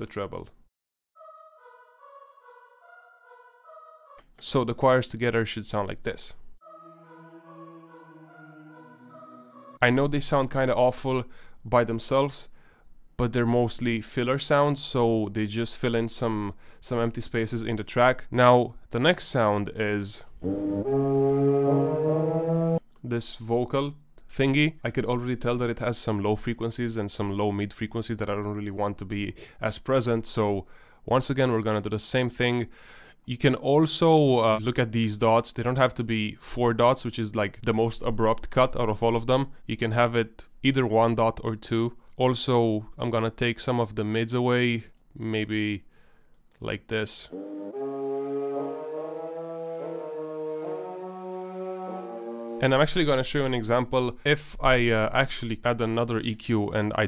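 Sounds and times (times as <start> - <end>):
long held vocal note: 6.6 - 10.0, 47.3 - 52.8.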